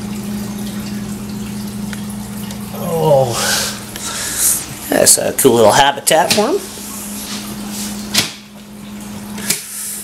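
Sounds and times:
filter pump humming: 0:00.0 - 0:10.0
water trickling and dripping: 0:00.0 - 0:10.0.

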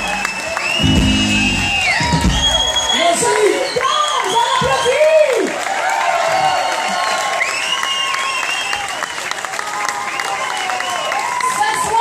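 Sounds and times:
crowd cheering and shouting: 0:00.0 - 0:12.0
crowd clapping: 0:00.0 - 0:12.0.

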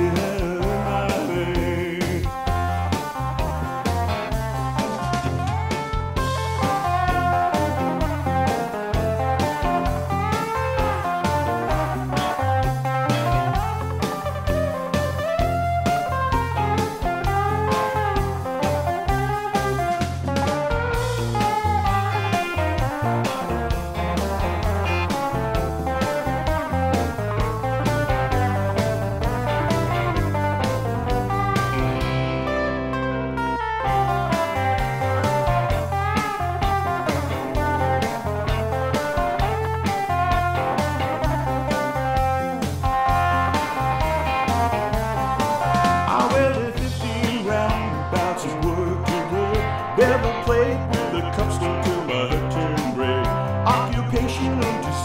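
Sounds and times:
backing track with bass and beat: 0:00.0 - 0:55.0
blues-rock electric guitar solo: 0:00.0 - 0:55.0.

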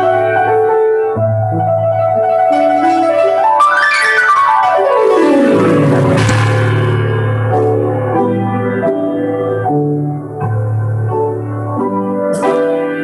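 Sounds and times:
solo piano chords: 0:00.0 - 0:13.0.

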